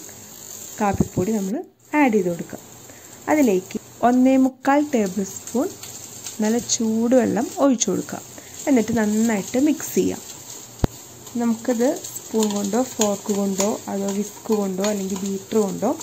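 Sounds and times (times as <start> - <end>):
woman talking: 0.8 - 2.6, 3.2 - 5.8, 6.4 - 10.2, 11.3 - 16.0.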